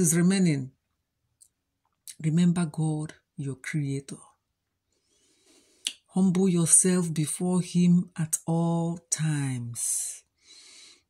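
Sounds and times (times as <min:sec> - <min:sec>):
faint breath in: 0:04.9 - 0:05.9, 0:10.4 - 0:11.0.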